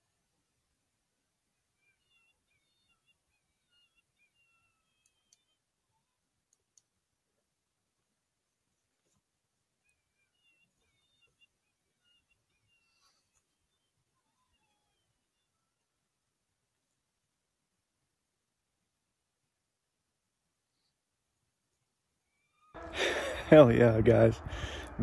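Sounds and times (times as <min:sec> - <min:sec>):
faint high-pitched chirping: 0:01.5 - 0:07.0, 0:09.0 - 0:16.4, 0:22.1 - 0:23.4
faint clicks: 0:04.9 - 0:05.6, 0:06.4 - 0:07.0.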